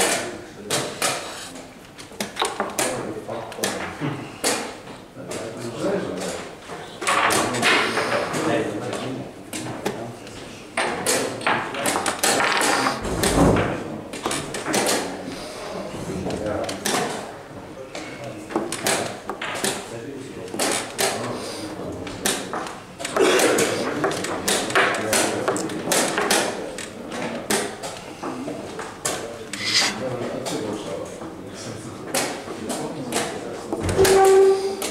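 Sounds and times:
chess pieces clacking on board: 2.1 - 2.9, 10.8 - 13.5, 29.0 - 30.0.

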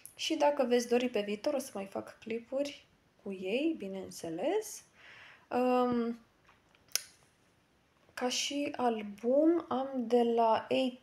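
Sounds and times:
sharp click: 6.8 - 7.2.

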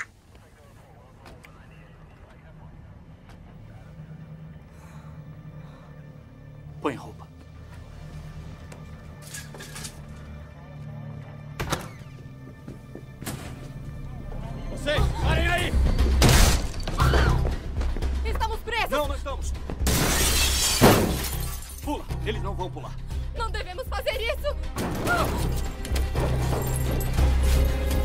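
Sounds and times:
tense music score: 0.9 - 28.0
glass shattering: 19.9 - 21.8.

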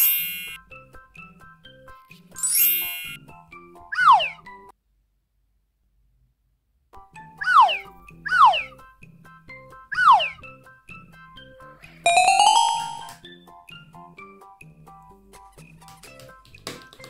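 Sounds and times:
rising sparkly chime: 2.4 - 3.2, 12.1 - 13.1.

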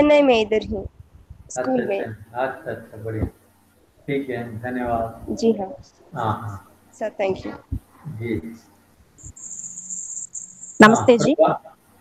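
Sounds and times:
person speaking: 0.0 - 0.9, 1.5 - 3.3, 4.1 - 8.6, 10.8 - 11.6
faint low hum: 0.0 - 12.0
high-pitched tone: 9.2 - 11.6.

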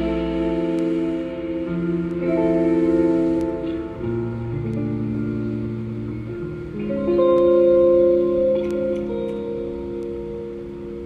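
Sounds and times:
guitar and bass chord ringing: 0.0 - 11.0.

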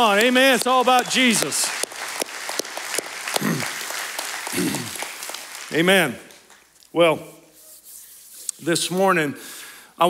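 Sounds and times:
crowd applauding: 0.0 - 6.7.

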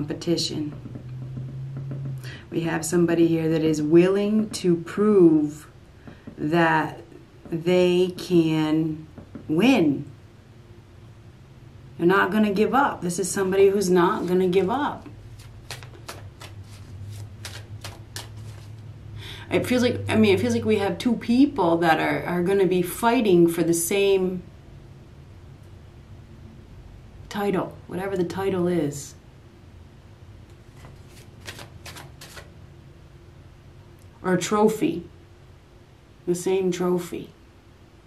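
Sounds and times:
low hum: 0.0 - 15.6
cards being shuffled: 15.2 - 18.8, 30.6 - 32.5.

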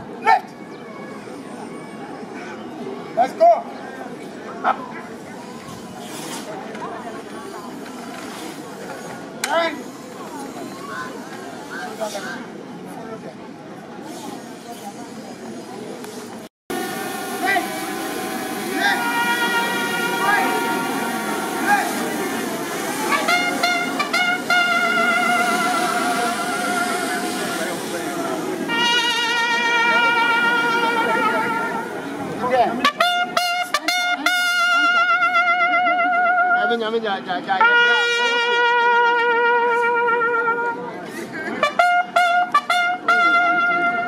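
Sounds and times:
murmur of voices: 0.0 - 44.0
trumpet playing slow tune: 17.9 - 22.0, 22.6 - 27.4, 28.7 - 32.0, 32.8 - 36.7, 37.6 - 40.9, 41.6 - 44.0.

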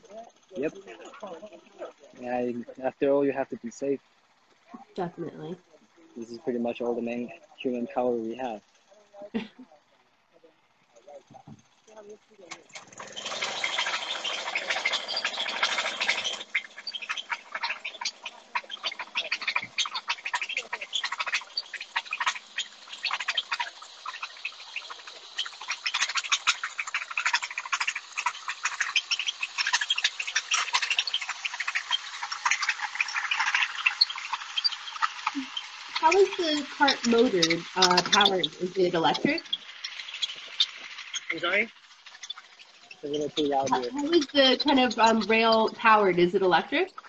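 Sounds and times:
small gasoline engine clattering: 3.3 - 4.8, 5.6 - 9.1, 9.8 - 47.0.

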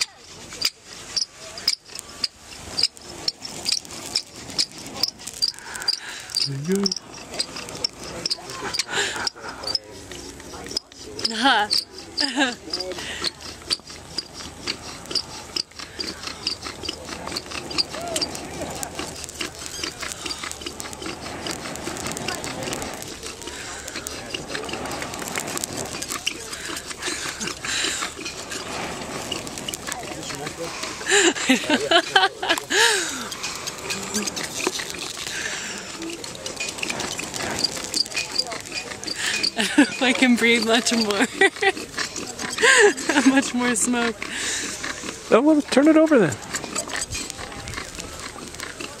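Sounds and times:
dry moss rustling and crackling: 0.0 - 49.0
person blowing breaths: 3.5 - 7.9, 8.6 - 10.4, 11.0 - 31.7, 32.6 - 38.0, 38.8 - 40.0, 41.8 - 43.1, 44.2 - 45.3
people talking: 6.5 - 7.0, 7.6 - 13.5, 17.0 - 49.0.

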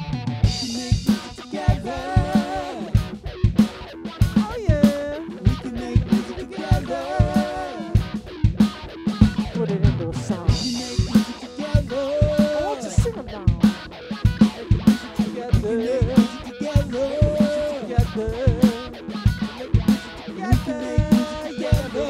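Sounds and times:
drum kit beat: 0.0 - 22.0
electric guitar playing: 0.0 - 22.0.

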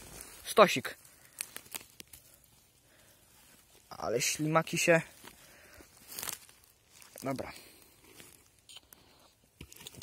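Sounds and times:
hand handling mushroom clicks: 0.2 - 10.0.

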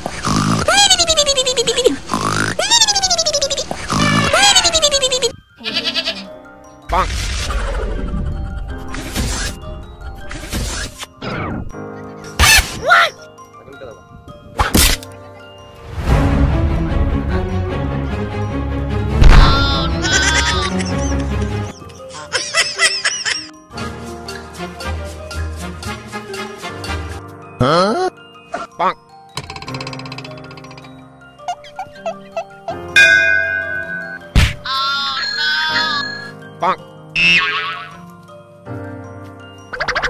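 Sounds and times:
background music: 0.0 - 40.0
comic high warbling calls: 0.4 - 6.2, 19.3 - 21.8, 31.5 - 38.0
wavering cry falling in pitch: 0.7 - 6.3, 19.5 - 21.0, 31.5 - 38.0.

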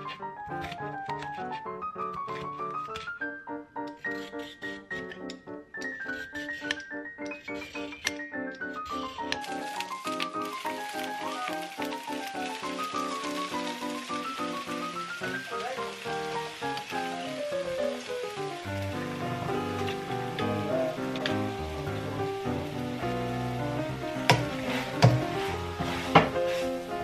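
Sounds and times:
background music: 0.0 - 27.0
vegetables sizzling in a wok: 8.8 - 27.0
spatula knocking on pan: 24.2 - 26.6.

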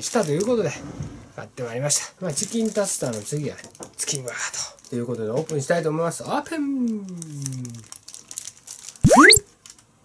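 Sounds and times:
paper wrapper crinkling: 7.1 - 9.0.

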